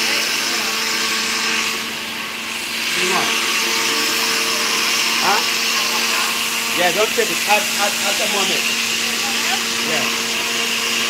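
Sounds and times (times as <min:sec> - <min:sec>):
blenders running: 0:00.0 - 0:11.0.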